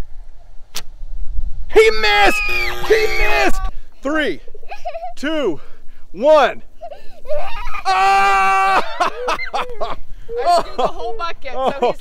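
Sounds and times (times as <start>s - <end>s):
bowstring snap: 0.7s - 1.0s.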